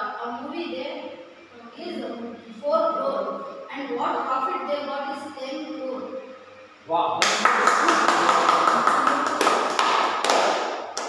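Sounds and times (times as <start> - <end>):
group clapping: 7.2 - 11.0.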